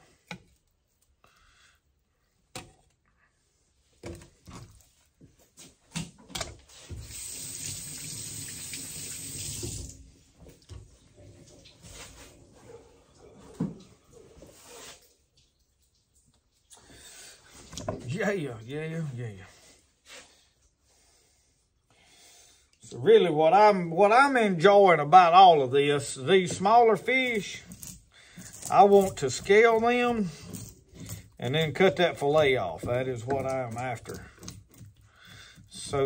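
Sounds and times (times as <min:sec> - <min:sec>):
tap water running: 0:06.8 - 0:12.0.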